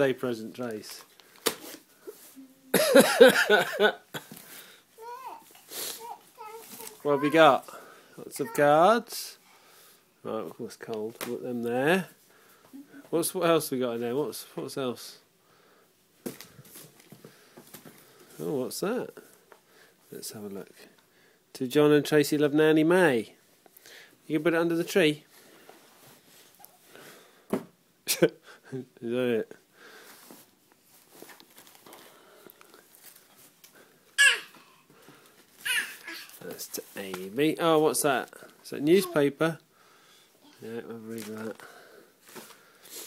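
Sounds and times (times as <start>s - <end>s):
rustling and handling noises: 0.0s - 9.4s, 16.1s - 21.1s, 23.4s - 27.6s, 29.9s - 39.7s, 40.5s - 43.0s
wrapping paper rustling: 30.8s - 33.7s
toddler squealing: 34.2s - 34.6s, 35.6s - 36.3s.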